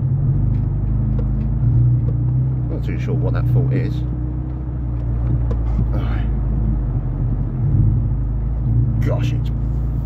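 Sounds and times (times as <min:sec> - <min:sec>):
car engine running: 0:00.0 - 0:10.0
low rumbling from rough track: 0:00.0 - 0:10.0.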